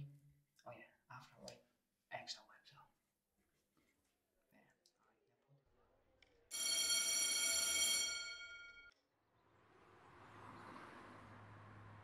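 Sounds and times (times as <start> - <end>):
electric school bell ringing: 6.5 - 8.9.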